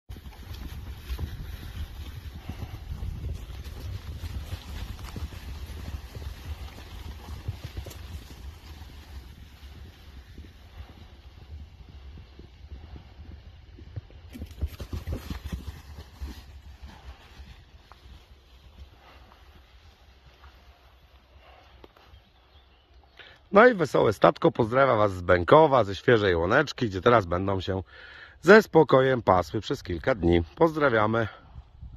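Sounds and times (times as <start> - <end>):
horse hoofbeats on grass: 0.0 - 24.0.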